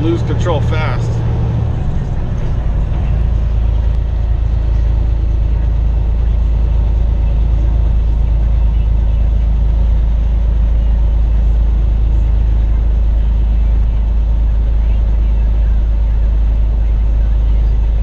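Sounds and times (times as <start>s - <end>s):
truck engine drone in cab: 0.0s - 18.0s.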